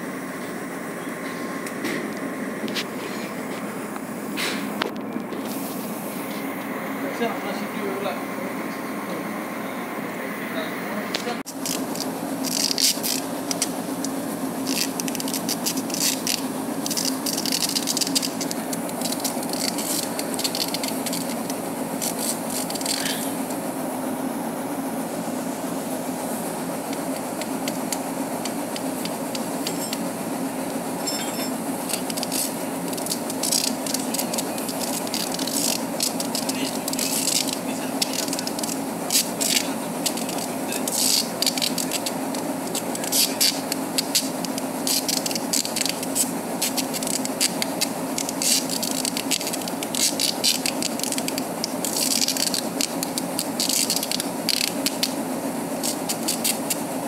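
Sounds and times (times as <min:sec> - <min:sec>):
deck machinery hum: 0:00.0 - 0:57.0
wire rope clicking and scraping: 0:11.4 - 0:23.6, 0:31.8 - 0:55.2, 0:55.8 - 0:56.8.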